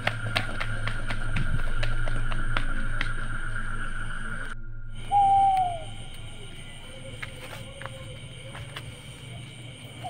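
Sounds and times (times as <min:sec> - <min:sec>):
steady high-pitched drone: 0:00.0 - 0:08.6
owl hoot: 0:05.0 - 0:06.0.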